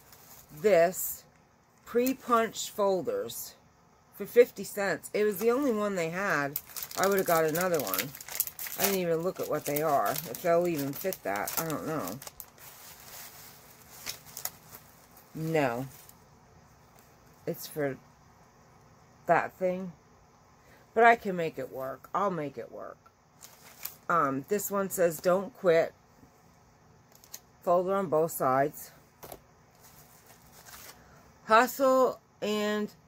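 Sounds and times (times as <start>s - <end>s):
paper folders rustling: 0.0s - 1.0s, 5.2s - 16.2s, 23.4s - 24.1s, 29.2s - 31.1s.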